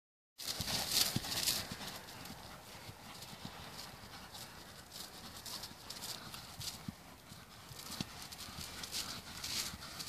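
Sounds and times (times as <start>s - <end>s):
hooves thudding on grass: 0.4s - 10.0s.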